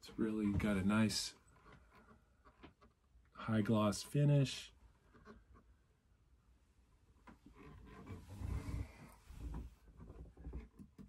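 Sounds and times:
light knocks and dull thumps: 0.0s - 3.0s, 7.2s - 11.0s
soft rustling of handling: 7.0s - 11.0s.

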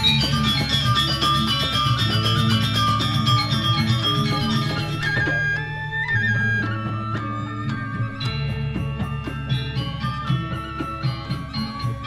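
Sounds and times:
gamelan ensemble playing: 0.0s - 12.0s.

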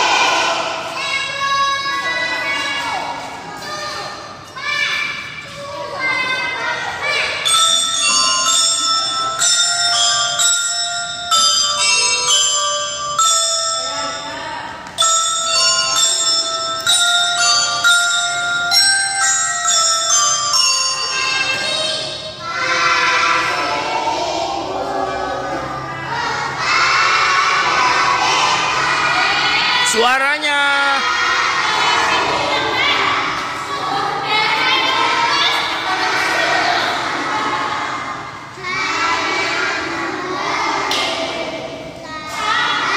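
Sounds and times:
children's voices: 0.0s - 30.0s, 30.6s - 42.9s
glockenspiel melody: 7.4s - 22.4s.

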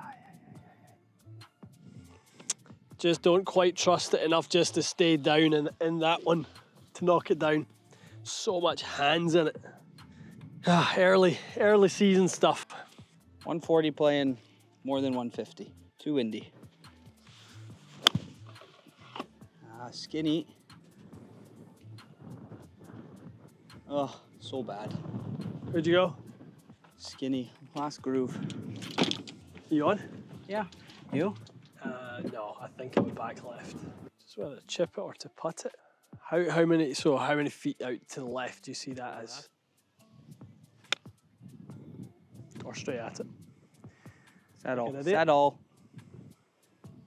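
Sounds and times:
golf club striking ball: 17.9s - 19.3s.

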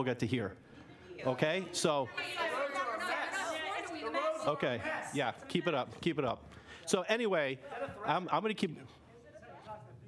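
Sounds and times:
overlapping voices talking: 1.6s - 6.2s.

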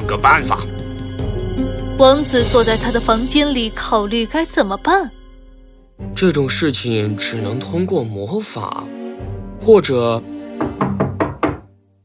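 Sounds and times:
soft background music: 0.0s - 12.0s
knocking at a door: 10.5s - 11.7s.

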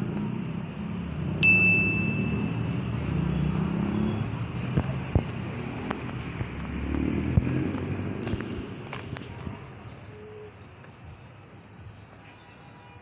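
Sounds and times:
street traffic: 0.0s - 13.0s.

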